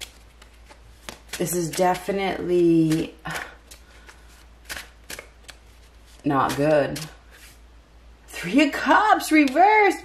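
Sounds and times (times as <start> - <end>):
cards being shuffled: 0.0 - 7.6, 9.3 - 10.0.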